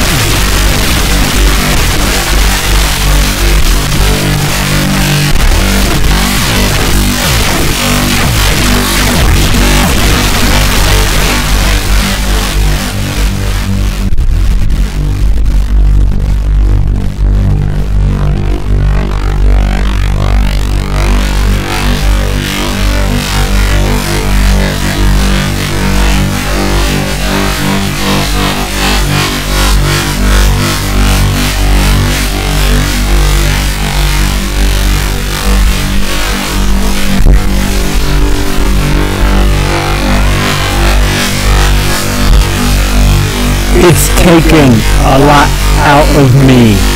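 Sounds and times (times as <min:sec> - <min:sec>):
synthesizer low sustained tones: 0:00.0 - 0:46.9.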